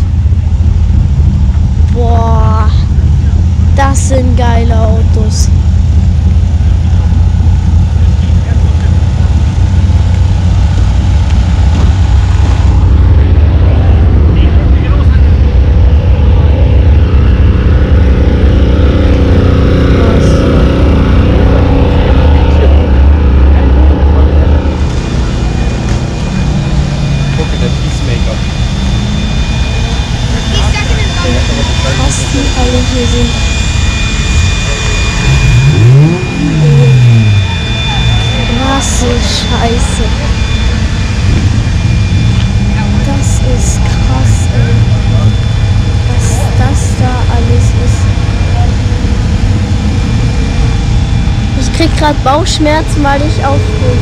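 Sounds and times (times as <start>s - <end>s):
engine revving: 0.0s - 54.0s
race car engines running: 0.0s - 54.0s.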